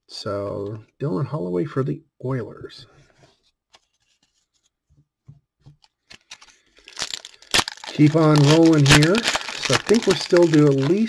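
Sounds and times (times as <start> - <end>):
trading cards tapping and rustling: 3.8 - 11.0.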